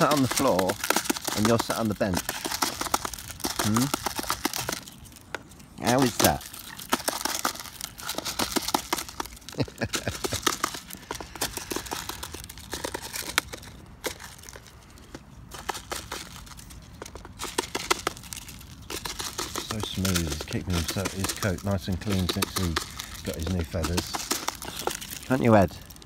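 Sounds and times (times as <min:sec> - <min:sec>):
swan bill clicking against plastic tub: 0:00.0 - 0:26.0.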